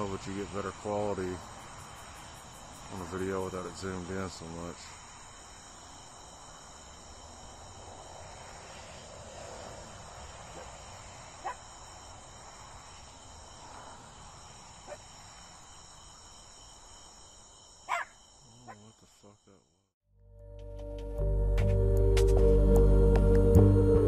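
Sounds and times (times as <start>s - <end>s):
night insects chirping: 0.0s - 19.9s.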